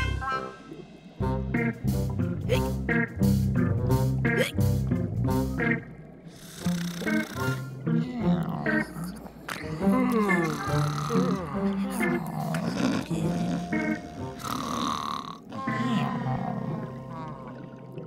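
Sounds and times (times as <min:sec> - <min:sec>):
background music: 0:00.0 - 0:18.0
cartoon voices snoring: 0:06.4 - 0:16.4.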